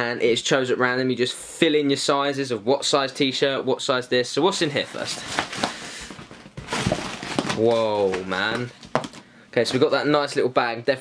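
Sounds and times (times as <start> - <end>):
plastic packaging crinkling: 4.8 - 9.3.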